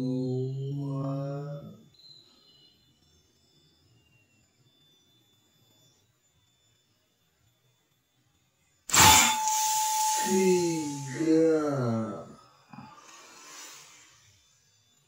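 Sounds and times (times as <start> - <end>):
faint ringing tone: 0.0 - 15.0
air rifle shot: 8.9 - 9.9
air hiss: 8.9 - 11.3, 13.0 - 14.3.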